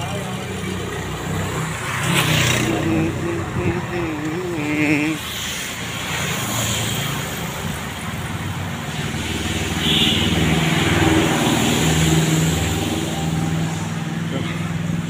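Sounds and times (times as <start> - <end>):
heavy vehicle engine humming: 0.0 - 6.0
street traffic: 0.0 - 15.0.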